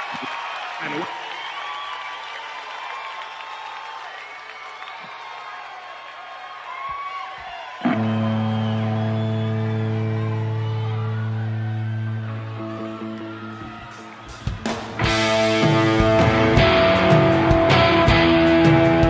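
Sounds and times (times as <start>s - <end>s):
crowd cheering and whistling: 0.0s - 19.0s.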